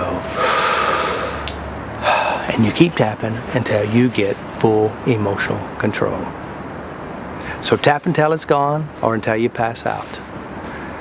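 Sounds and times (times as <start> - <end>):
man breathing in deeply: 0.2 - 2.5.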